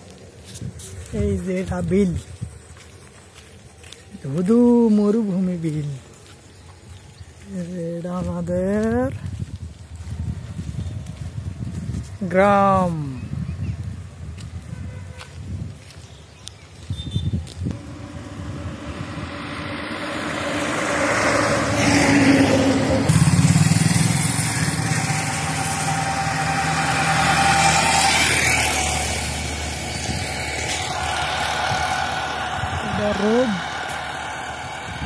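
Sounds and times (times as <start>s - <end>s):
vehicle engine passing: 17.7s - 35.0s.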